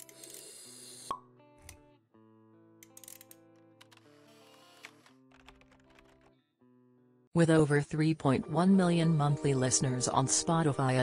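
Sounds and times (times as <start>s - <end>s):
soft background music: 0.0s - 6.2s, 7.3s - 11.0s.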